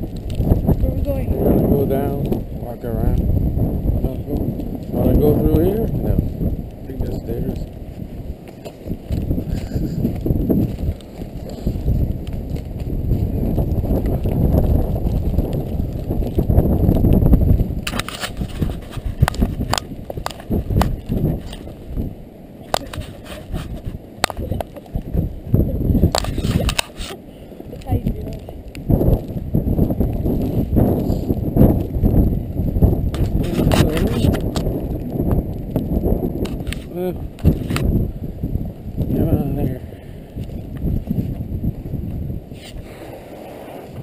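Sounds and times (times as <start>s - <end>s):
wind against microphone: 0.0s - 44.0s.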